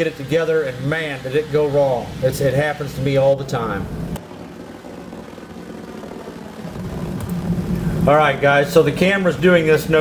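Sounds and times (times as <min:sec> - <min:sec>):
gas burner pulsing rumble: 0:00.0 - 0:10.0.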